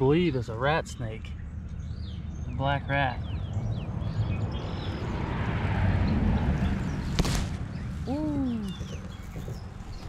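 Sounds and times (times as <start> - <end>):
faint bird chirps: 7.8 - 10.0.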